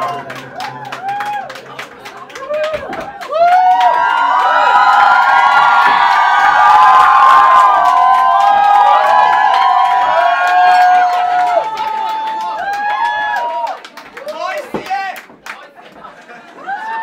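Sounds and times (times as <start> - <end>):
audience cheering and screaming: 0.0 - 1.8, 2.4 - 13.8, 16.5 - 17.0.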